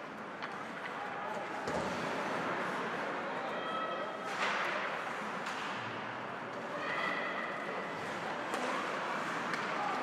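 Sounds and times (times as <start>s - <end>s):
arena crowd noise: 0.0s - 10.0s
sticks hitting puck: 4.2s - 5.9s, 8.4s - 10.0s.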